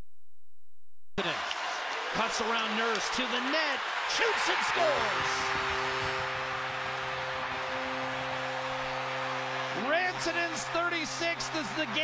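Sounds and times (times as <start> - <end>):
crowd cheering: 1.2 - 12.0
arena goal horn: 4.4 - 11.2.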